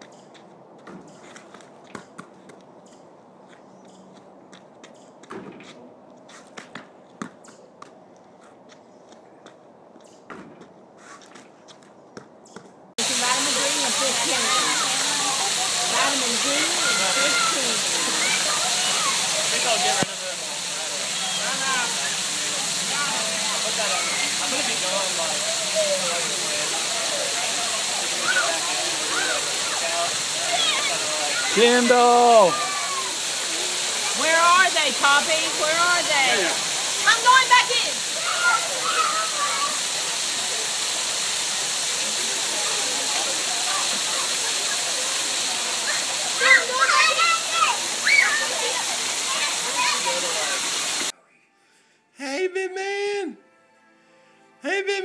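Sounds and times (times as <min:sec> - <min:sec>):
fountain water falling on stone: 0:13.0 - 0:51.1
children shouting and chattering: 0:13.5 - 0:34.4, 0:35.3 - 0:51.1.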